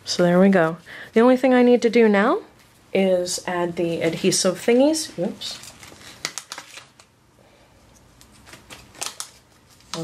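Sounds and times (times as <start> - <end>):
taps and rustles of handling: 7.9 - 10.0.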